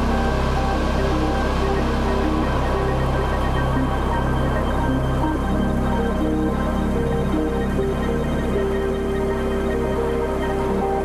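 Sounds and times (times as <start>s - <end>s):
background music with held notes: 0.0s - 11.0s
steady low bass: 0.0s - 11.0s.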